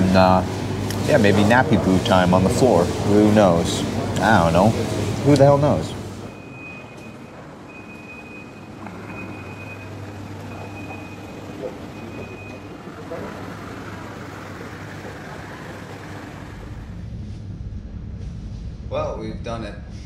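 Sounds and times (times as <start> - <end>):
high electronic beep: 6.3 - 9.9
low hum: 13.6 - 20.0.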